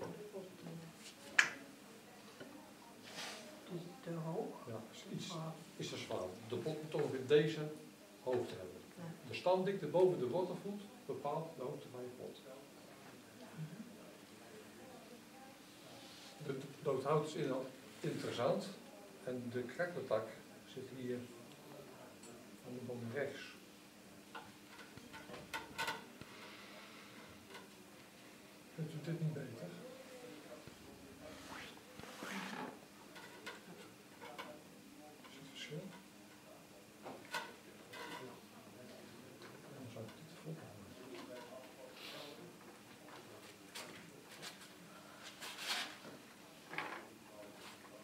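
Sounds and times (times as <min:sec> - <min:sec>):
faint low talk: 0:00.0 - 0:48.0.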